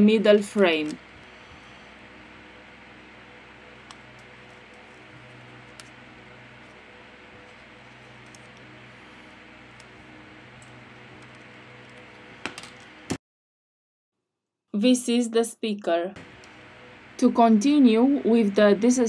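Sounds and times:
room hiss: 0.0s - 13.2s.

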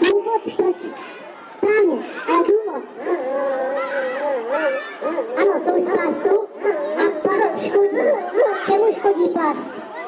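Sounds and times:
dog-like howling over speakers: 3.0s - 6.0s
yelping calls: 3.0s - 8.7s.

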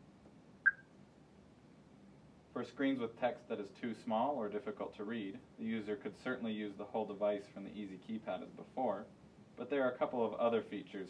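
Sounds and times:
short high electronic beep: 0.7s - 0.9s.

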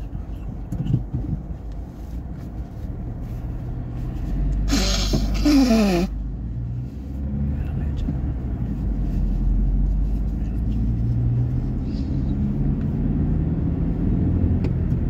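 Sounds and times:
car engine and road rumble: 0.0s - 15.0s.

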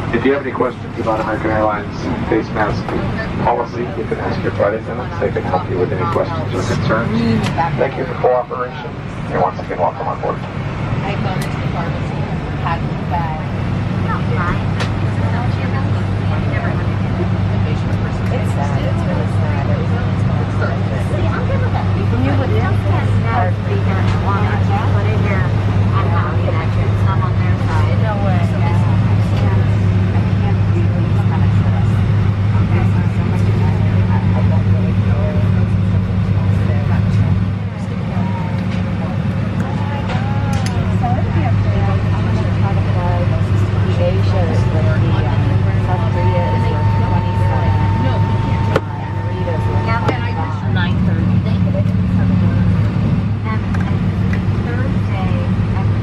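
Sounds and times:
aircraft systems hum: 0.0s - 56.0s
passengers chattering: 0.0s - 56.0s.

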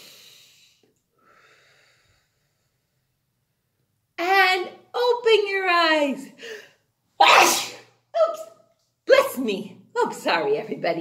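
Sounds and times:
woman sneezing: 7.2s - 8.4s.

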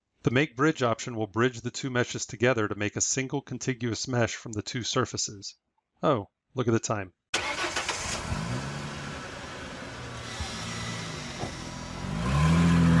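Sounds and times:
car engine starting and revving: 7.4s - 13.0s.

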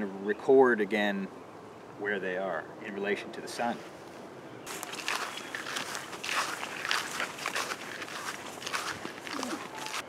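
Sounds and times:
footsteps swishing through grass: 4.7s - 10.0s.

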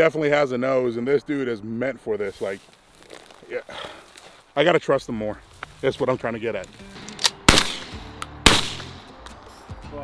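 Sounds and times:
background music: 6.0s - 10.0s
shotgun shot: 7.2s - 9.1s.

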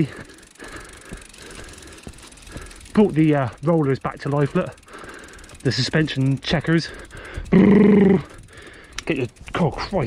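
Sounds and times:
bike knocks and rattles: 0.0s - 8.2s
mountain bike rolling on dirt: 0.0s - 10.0s.

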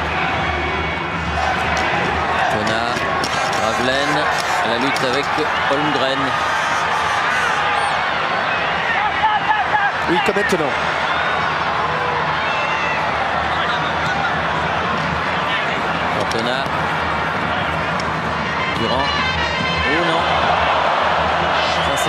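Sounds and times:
crowd shouts: 0.0s - 22.0s
stadium crowd voices: 0.0s - 22.0s.

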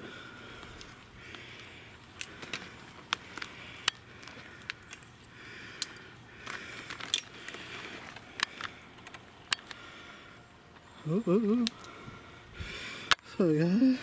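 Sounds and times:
twigs snapping underfoot: 0.5s - 9.9s.

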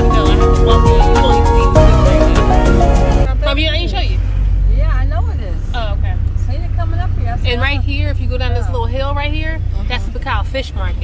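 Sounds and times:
person speaking: 0.0s - 3.4s.

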